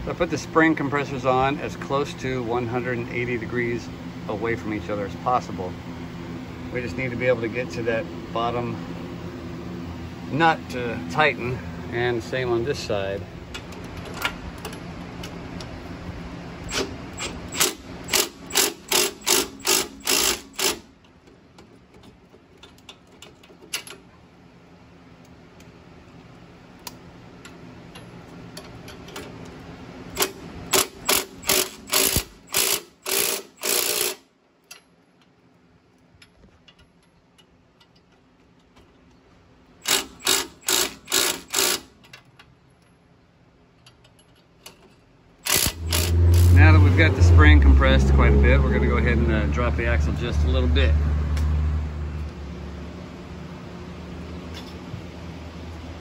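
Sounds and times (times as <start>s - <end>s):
ratchet wrench clicking: 16.7s - 20.9s, 30.1s - 34.8s, 39.8s - 42.3s, 45.4s - 46.6s.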